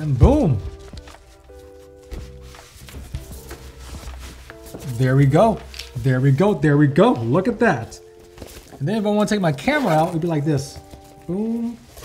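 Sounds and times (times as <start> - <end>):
fabric pouch rustling and knocking: 0.0 - 12.0
soft background music: 0.0 - 12.0.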